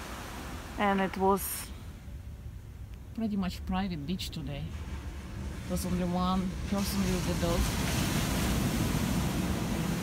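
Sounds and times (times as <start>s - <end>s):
wind rumbling on microphone: 0.0s - 10.0s
surf breaking on beach: 6.5s - 10.0s.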